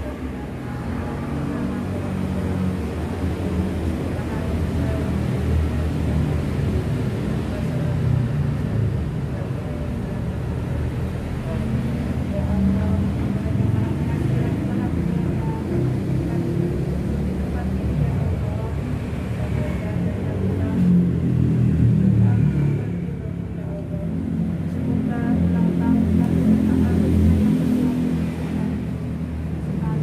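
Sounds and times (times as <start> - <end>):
person reciting a prayer: 0.0 - 30.0.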